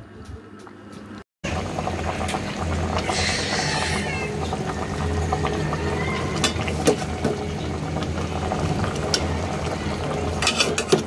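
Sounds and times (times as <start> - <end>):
curry simmering and bubbling: 1.4 - 11.0.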